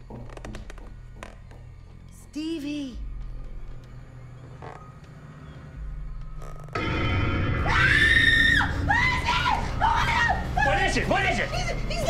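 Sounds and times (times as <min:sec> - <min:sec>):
droning suspense music: 0:00.0 - 0:12.0
woman screaming: 0:07.6 - 0:10.7.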